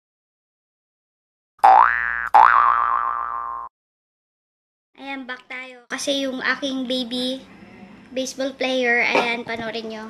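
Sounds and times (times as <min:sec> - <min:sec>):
cartoon boing sound effect: 0:01.6 - 0:03.7.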